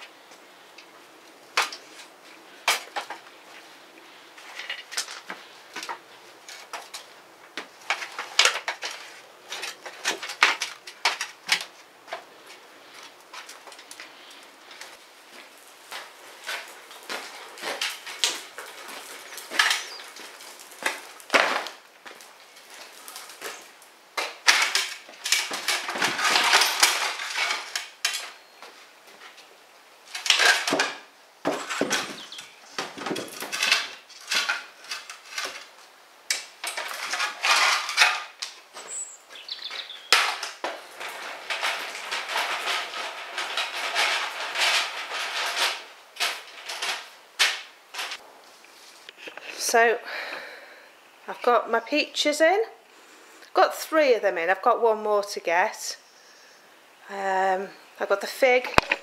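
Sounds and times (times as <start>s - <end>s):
scraping across concrete floor: 0.0s - 50.4s
plant pots clattering: 0.8s - 48.2s, 57.1s - 59.0s.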